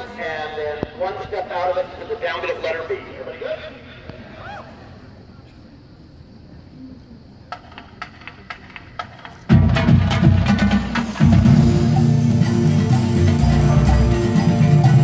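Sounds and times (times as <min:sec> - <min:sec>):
marching band playing: 0:08.6 - 0:15.0.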